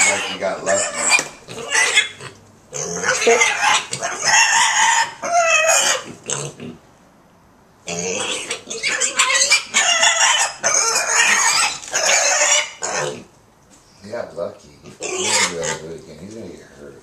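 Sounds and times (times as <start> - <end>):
piglets squealing: 0.0 - 6.8, 7.9 - 13.3, 14.8 - 15.9.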